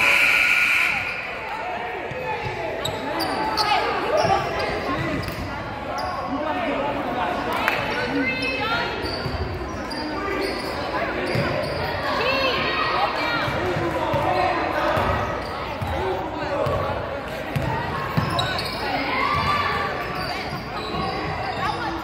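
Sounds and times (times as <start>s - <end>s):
sneakers squeaking: 0.0s - 6.5s, 7.8s - 12.6s, 16.7s - 22.0s
voices echoing in gym: 0.0s - 22.0s.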